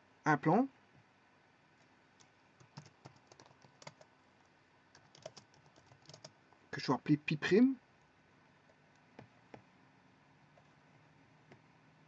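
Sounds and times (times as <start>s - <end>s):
typing on computer keyboard: 2.2s - 4.1s, 4.9s - 6.4s.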